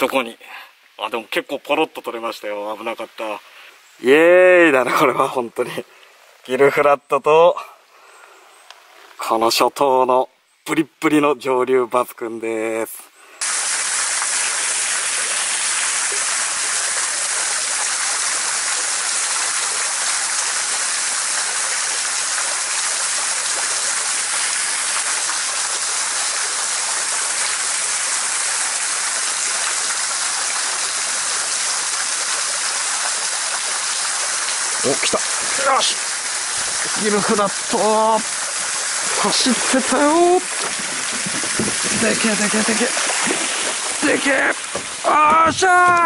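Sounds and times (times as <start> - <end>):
waterfall pouring into pool: 13.4 - 46.0
man's voice: 36.8 - 38.3, 39.1 - 40.5, 41.9 - 43.0, 44.0 - 46.0.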